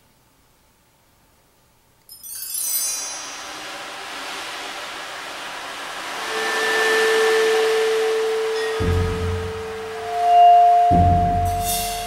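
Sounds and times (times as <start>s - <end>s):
held pitched tone: 2.1s - 12.0s
hushed percussion wash: 2.2s - 12.0s
low percussion stroke: 2.6s - 12.0s.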